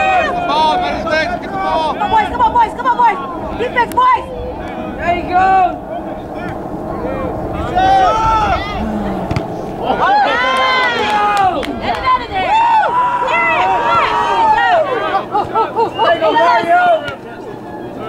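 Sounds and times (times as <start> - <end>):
crowd shouting: 0.0 - 18.0
long drawn-out shout: 6.9 - 15.3.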